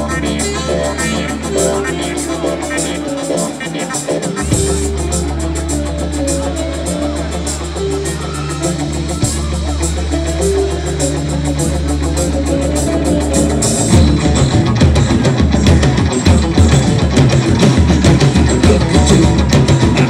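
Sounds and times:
bass and guitar notes: 0:00.0 - 0:20.0
rock band with drums: 0:00.0 - 0:20.0.

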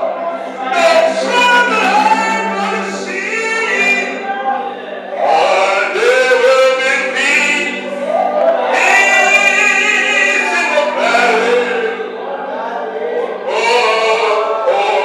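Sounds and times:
man singing into microphone: 0:00.0 - 0:15.0
voices singing along: 0:00.0 - 0:15.0.

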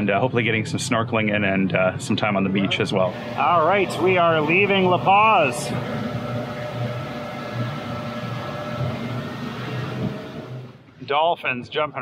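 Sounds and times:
outboard motor running: 0:02.7 - 0:10.8
rush of boat wake: 0:03.1 - 0:10.8.

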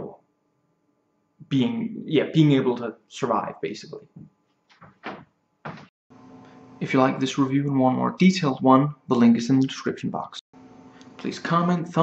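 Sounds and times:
chair thumps and knocks: 0:04.7 - 0:05.9.

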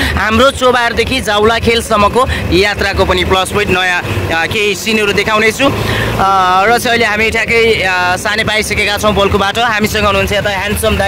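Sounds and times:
people talking: 0:00.0 - 0:11.0
vehicle running noise: 0:00.0 - 0:11.0.

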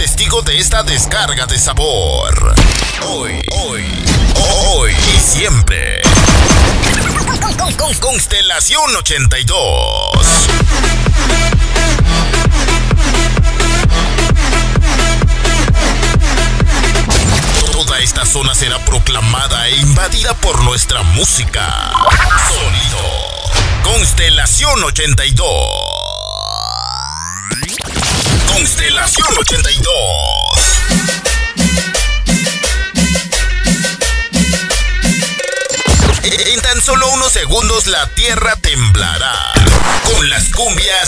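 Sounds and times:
music: 0:00.0 - 0:05.4, 0:10.1 - 0:25.3, 0:28.5 - 0:38.7
sharp stuttering hits: 0:02.4 - 0:08.2, 0:39.4 - 0:40.8
electronic crash: 0:02.4 - 0:08.3, 0:17.1 - 0:18.3, 0:21.7 - 0:30.7, 0:35.6 - 0:37.2, 0:39.4 - 0:40.7
low bass drone: 0:10.0 - 0:17.3, 0:21.7 - 0:27.5
synthesized rising sweep: 0:25.5 - 0:27.9
rapid electronic zaps: 0:39.6 - 0:40.3.

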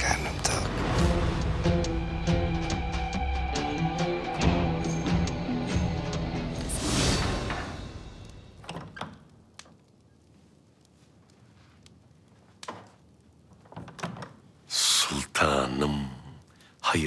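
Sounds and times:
soundtrack music: 0:00.0 - 0:08.5
door opening: 0:07.1 - 0:09.4, 0:13.5 - 0:14.5.

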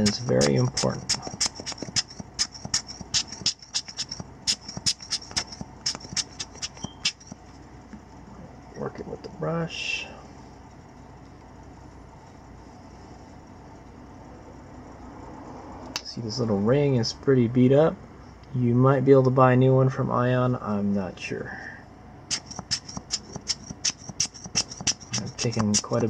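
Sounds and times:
air blower puffs: 0:00.0 - 0:07.3.

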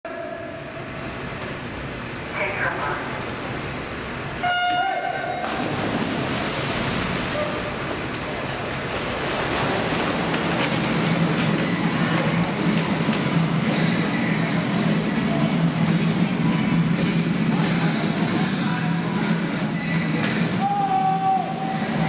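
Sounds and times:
crowd noise: 0:04.4 - 0:22.0.

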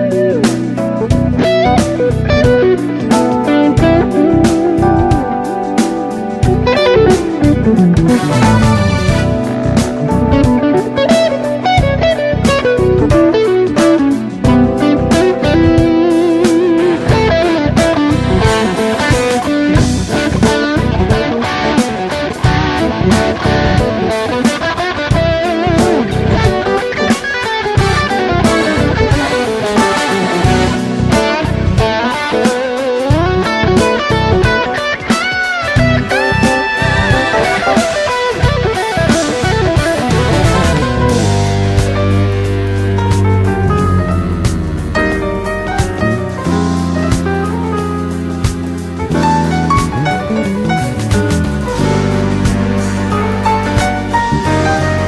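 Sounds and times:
bass: 0:00.0 - 0:35.0, 0:35.7 - 0:55.0
drums: 0:00.0 - 0:55.0
electric guitar lead with bent notes: 0:00.0 - 0:55.0.

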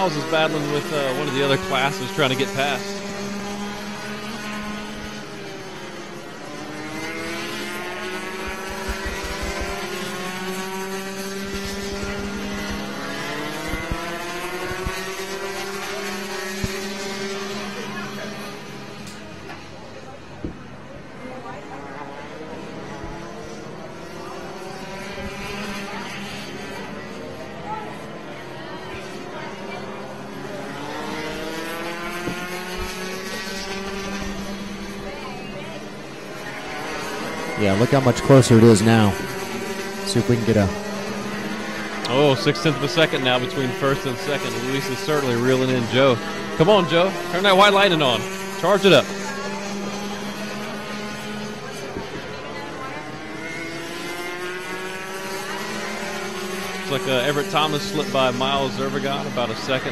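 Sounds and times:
kart engines running: 0:00.0 - 0:59.9.

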